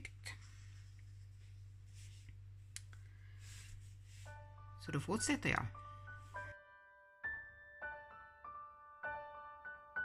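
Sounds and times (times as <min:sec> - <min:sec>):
low steady hum: 0:00.0 - 0:06.5.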